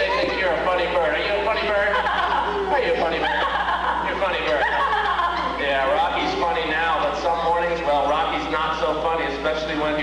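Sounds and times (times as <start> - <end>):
people talking: 0.0 - 10.0
steady low hum: 0.0 - 10.0.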